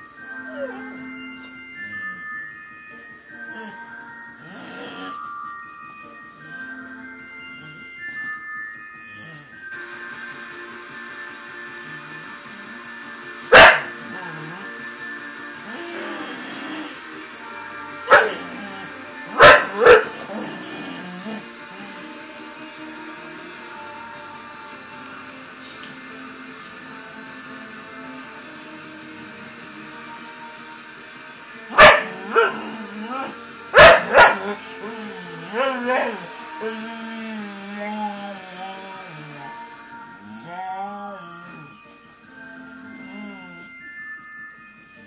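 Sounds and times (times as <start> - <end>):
guitar music: 0.0 - 45.0
dog barking: 13.5 - 14.0, 18.1 - 18.5, 19.3 - 20.2, 31.7 - 32.6, 33.8 - 34.6
dog wavering vocal sound: 31.9 - 41.8.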